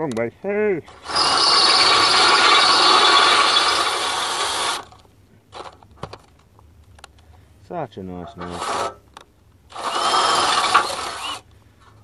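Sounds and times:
power tool running: 0:00.9 - 0:05.0, 0:09.7 - 0:11.4.

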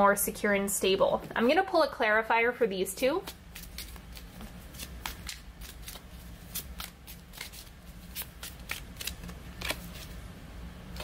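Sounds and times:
cards being shuffled: 0:03.2 - 0:10.2.

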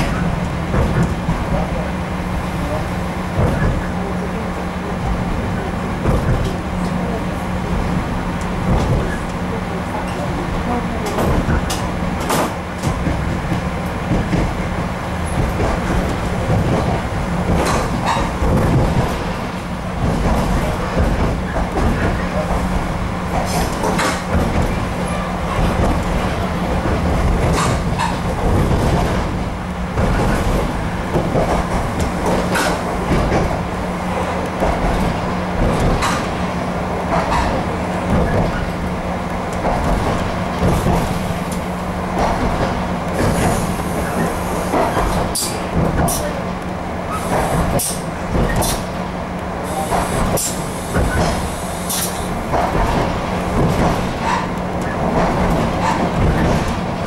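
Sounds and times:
train rumble and hum: 0:00.0 - 0:57.0
wheels clicking over rail joints: 0:02.7 - 0:57.0.

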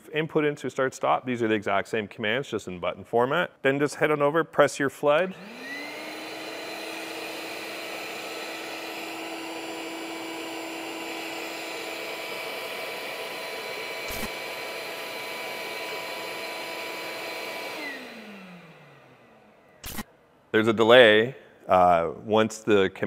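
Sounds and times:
shop vacuum motor running: 0:05.1 - 0:20.0.

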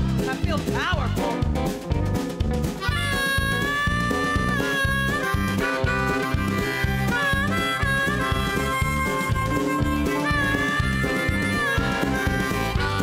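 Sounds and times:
country rock band playing: 0:00.0 - 0:13.0
harmonica solo: 0:02.6 - 0:13.0.

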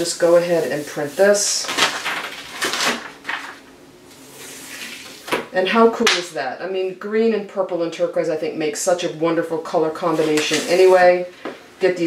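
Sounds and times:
paper rustling: 0:00.0 - 0:05.4, 0:10.0 - 0:11.2.

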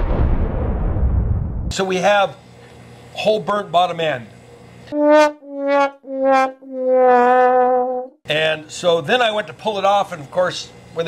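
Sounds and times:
sad trombone sound effect: 0:04.9 - 0:08.2.

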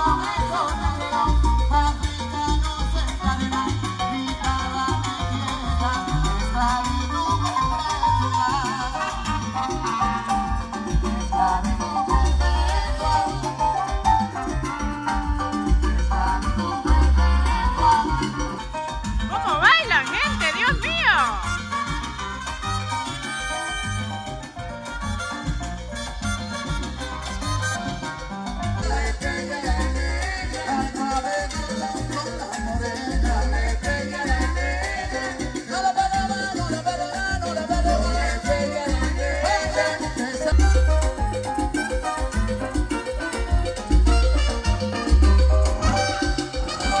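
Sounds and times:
congas: 0:00.0 - 0:47.0
deep bass line: 0:00.0 - 0:47.0
salsa band over loudspeakers: 0:00.0 - 0:47.0.

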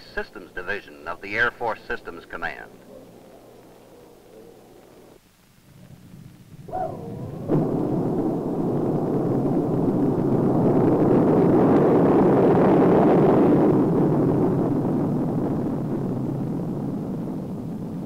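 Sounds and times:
rocket engines roaring: 0:00.0 - 0:18.0
sharp crack: 0:02.1 - 0:15.7
wavering tone: 0:05.8 - 0:09.4.

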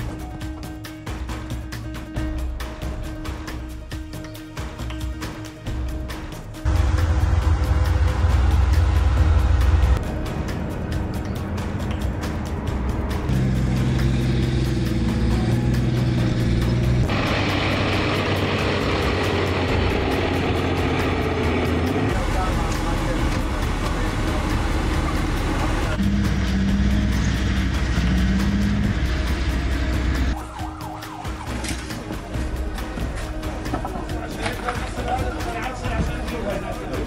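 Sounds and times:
military vehicle engines running: 0:06.7 - 0:30.4
voices: 0:22.1 - 0:26.0, 0:33.3 - 0:37.0.

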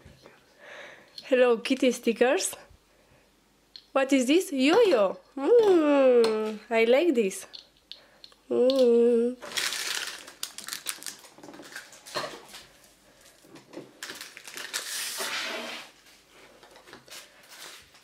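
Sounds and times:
packaging rustling and crinkling: 0:09.4 - 0:15.4.

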